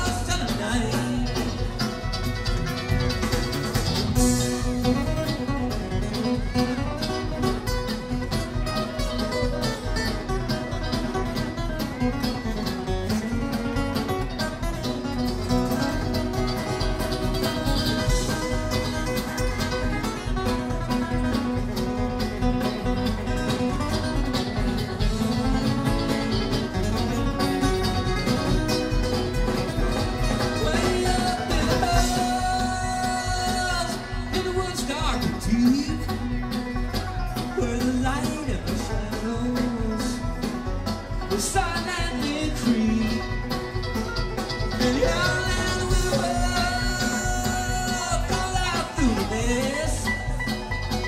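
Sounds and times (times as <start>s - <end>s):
acoustic guitar: 0.0s - 51.0s
banjo: 0.0s - 51.0s
mandolin: 0.0s - 51.0s.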